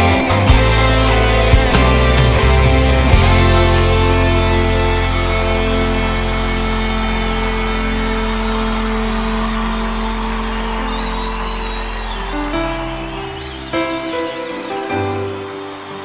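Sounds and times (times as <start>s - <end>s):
instrumental gospel band music: 0.0s - 16.0s.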